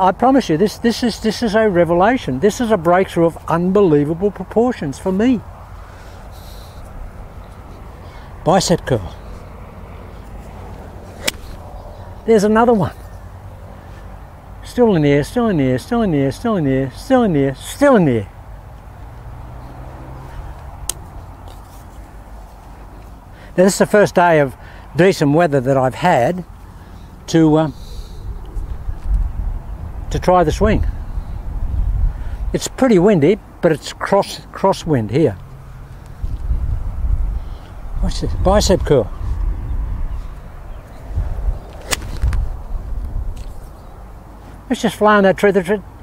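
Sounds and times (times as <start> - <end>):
golf club striking ball: 11.1 - 11.6, 41.7 - 42.5
sharp click: 11.2 - 11.6, 41.7 - 42.4
wind rumbling on microphone: 27.8 - 32.6, 35.8 - 44.3.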